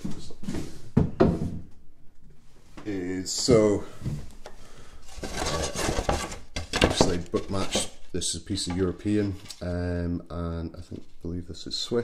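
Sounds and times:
wood scraping on workbench: 5.0s - 8.0s.

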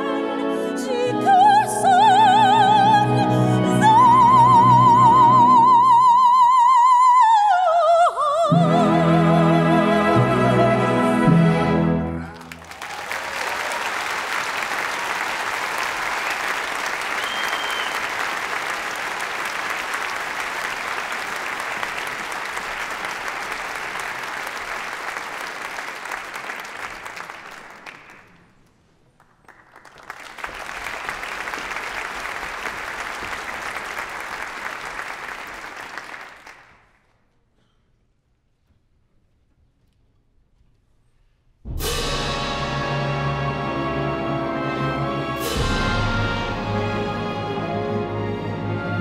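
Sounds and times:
audience applauding: 12.2s - 37.0s.

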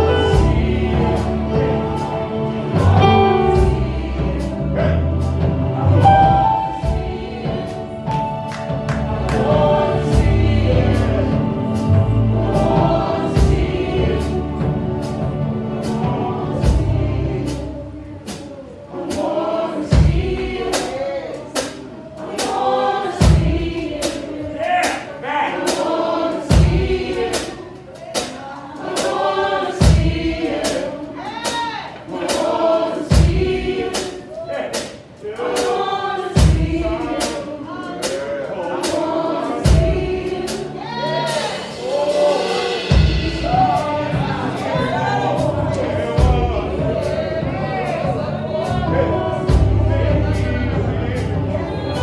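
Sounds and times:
gospel choir singing: 0.0s - 52.0s
deep drum thumps: 2.7s - 17.8s.

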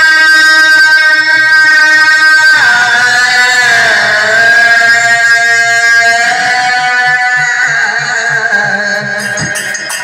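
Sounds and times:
harmonium drone: 0.0s - 10.0s
man singing sliding notes: 0.1s - 9.8s.

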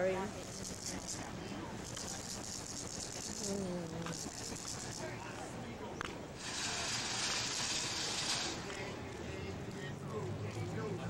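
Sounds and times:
steady hiss: 6.4s - 8.8s.

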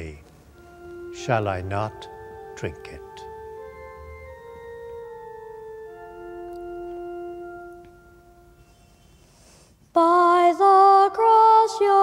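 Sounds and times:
soft organ chords: 0.0s - 9.3s.

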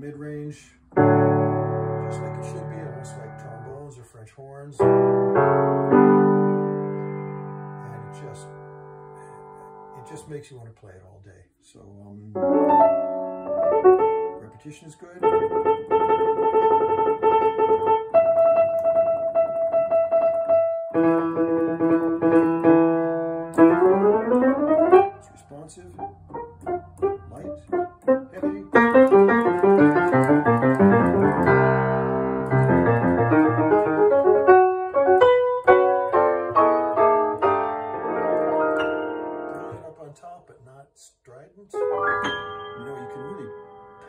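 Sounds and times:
grand piano playing: 0.9s - 4.0s, 4.8s - 10.3s, 12.3s - 40.1s, 41.8s - 44.0s.

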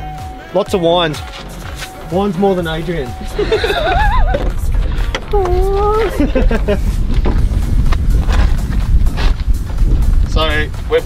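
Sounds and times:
background music: 0.0s - 11.0s
men laughing: 3.2s - 7.2s.

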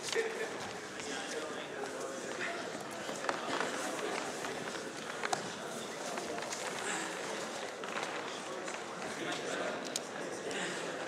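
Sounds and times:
indistinct background talk: 0.0s - 11.0s.

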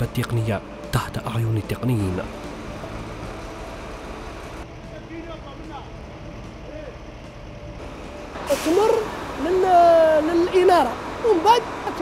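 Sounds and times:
bus engine idling: 1.9s - 12.0s.

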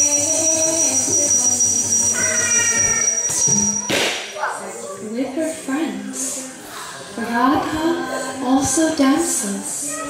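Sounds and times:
person singing: 0.0s - 3.9s
high thin whine: 0.0s - 4.4s
sharp hit: 3.3s - 4.5s.

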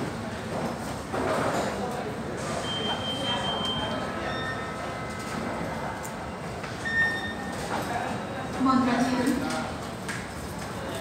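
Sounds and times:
indoor hall background noise: 0.0s - 11.0s.

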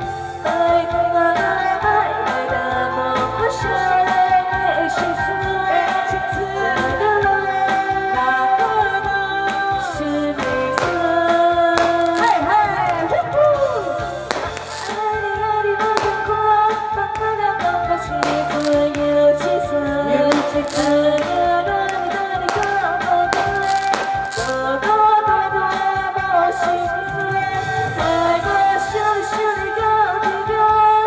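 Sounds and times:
backing track with beat: 11.8s - 13.0s, 14.3s - 15.0s, 16.0s - 16.4s, 18.2s - 19.4s, 20.2s - 24.6s
sharp percussion hits: 16.0s - 16.4s, 20.3s - 24.6s
woman singing pop song: 16.0s - 27.4s.

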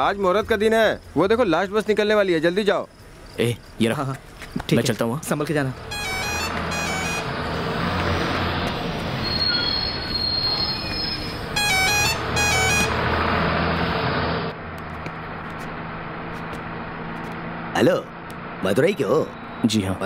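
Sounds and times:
bus engine running: 5.4s - 20.0s
bus horn beeps: 5.8s - 13.8s.

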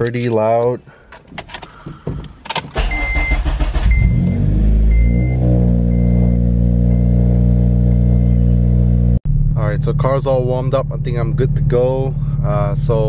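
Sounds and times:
car starter cranking: 1.2s - 5.2s
high dashboard warning chime: 2.8s - 8.9s.

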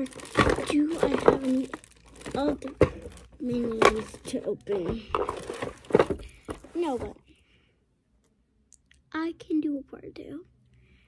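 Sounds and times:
girl speaking: 0.0s - 5.2s, 6.6s - 7.2s, 9.0s - 10.5s.

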